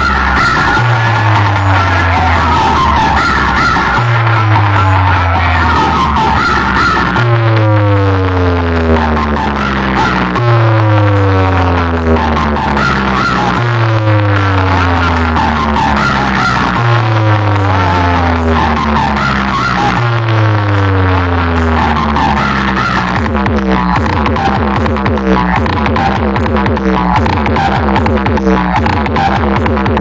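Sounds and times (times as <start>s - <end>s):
heavy bass with falling tones: 0.0s - 30.0s
loud dj music through speakers: 0.0s - 30.0s.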